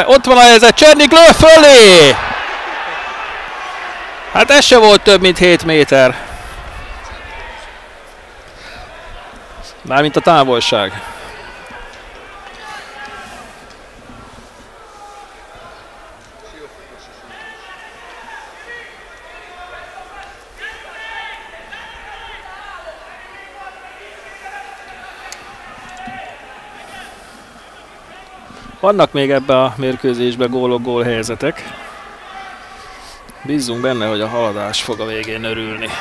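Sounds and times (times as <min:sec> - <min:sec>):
distant shouting voices: 0:14.8 - 0:28.7.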